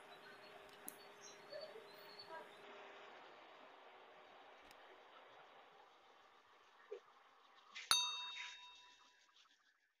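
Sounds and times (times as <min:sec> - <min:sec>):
bell ding: 0:07.9 - 0:09.1.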